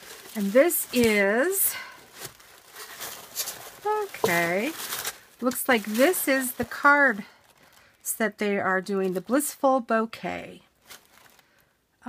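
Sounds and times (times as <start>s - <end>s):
plastic package crinkling: 0.0s - 9.5s, 10.7s - 11.7s
tissue paper rustling: 0.0s - 9.5s, 10.7s - 11.6s.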